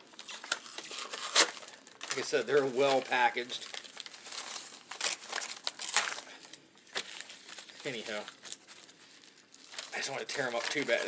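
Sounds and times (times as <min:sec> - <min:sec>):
paper envelope tearing and crinkling: 0:00.1 - 0:11.0.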